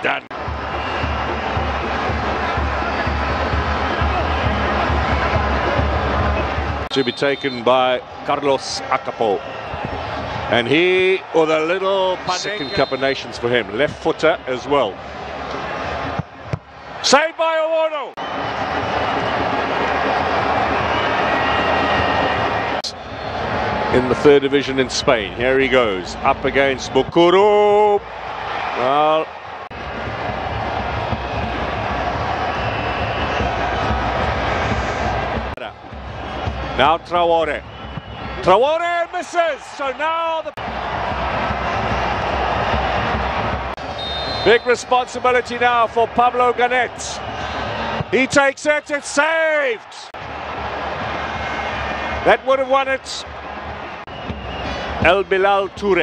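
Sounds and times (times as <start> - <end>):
stadium crowd noise: 0.0 - 56.0
kick striking football: 16.2 - 16.7.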